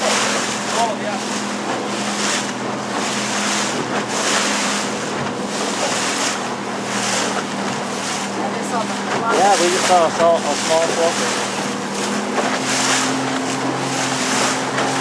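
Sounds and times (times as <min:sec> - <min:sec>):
boat motor humming: 0:00.0 - 0:15.0
rushing water: 0:00.0 - 0:15.0.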